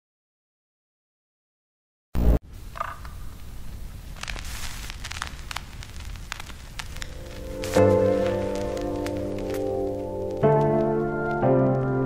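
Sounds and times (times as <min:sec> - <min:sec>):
crackling static with pops: 0:02.2 - 0:12.0.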